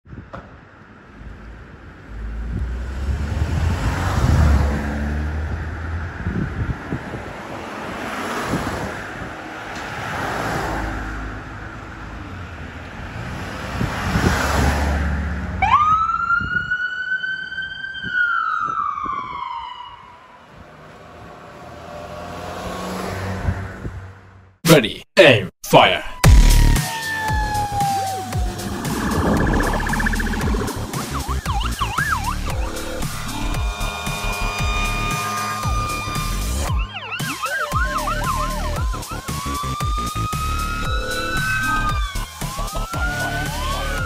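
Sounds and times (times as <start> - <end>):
ambulance siren: 15.6 - 20.6, 26.1 - 44.0.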